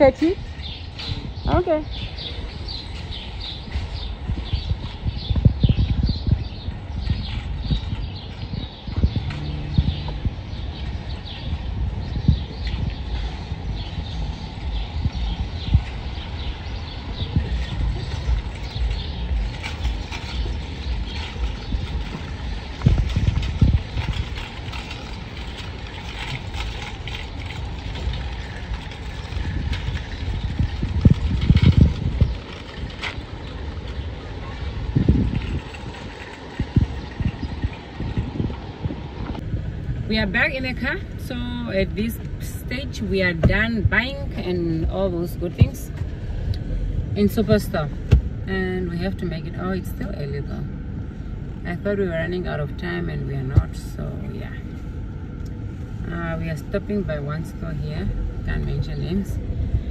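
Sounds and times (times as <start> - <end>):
shopping cart rattling over concrete: 0.0 - 38.7.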